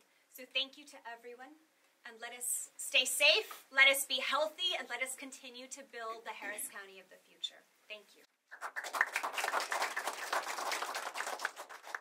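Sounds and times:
audience applauding: 8.5 - 12.0.

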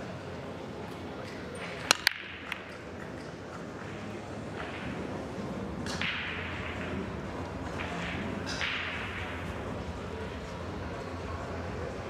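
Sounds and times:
cue striking ball: 1.7 - 10.3.

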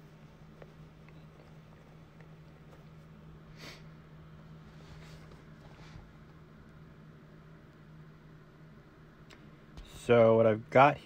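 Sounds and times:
soft rustles: 0.0 - 3.4, 4.4 - 6.5
faint low hum: 0.0 - 11.0.

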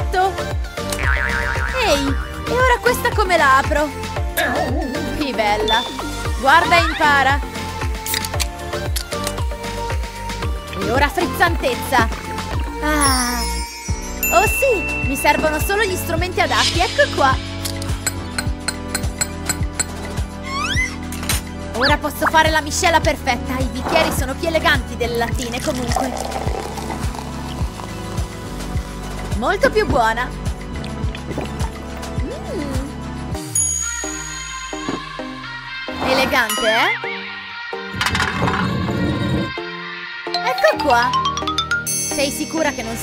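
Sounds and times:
upbeat music with drum beat: 0.0 - 21.0, 21.8 - 33.6
soda can opening with fizz: 25.6 - 28.2.

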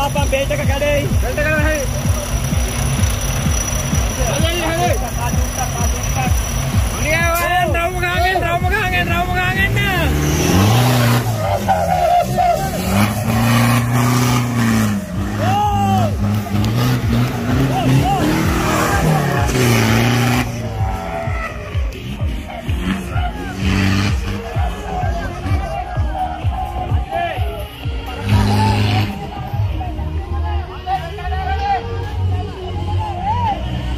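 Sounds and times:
off-road engine revving: 0.0 - 30.0
spectators shouting: 7.1 - 32.0.

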